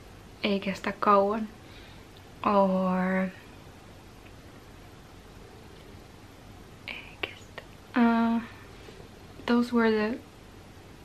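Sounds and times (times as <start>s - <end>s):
woman breathing: 1.6s - 2.2s.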